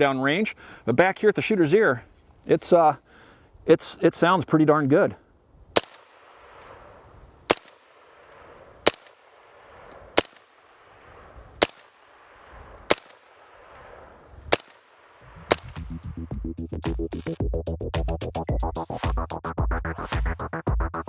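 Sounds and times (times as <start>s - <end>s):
suppressed rifle shots: 5.8s - 16.0s.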